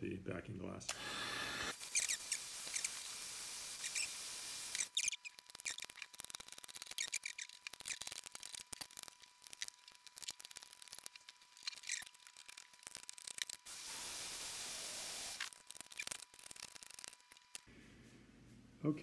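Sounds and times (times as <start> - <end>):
heat gun blowing: 0.9 - 5.0, 13.7 - 15.5.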